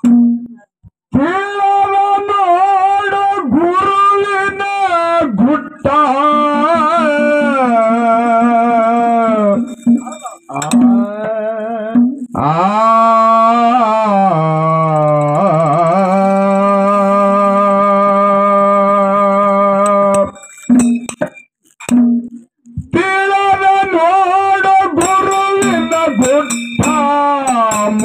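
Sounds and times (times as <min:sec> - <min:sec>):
man singing with vibrato: 0:01.1 - 0:21.1, 0:22.8 - 0:28.0.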